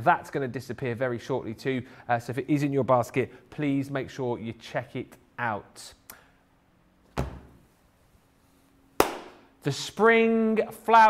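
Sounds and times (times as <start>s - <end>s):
thump: 7.1s - 7.6s
hand clap: 9.0s - 9.5s.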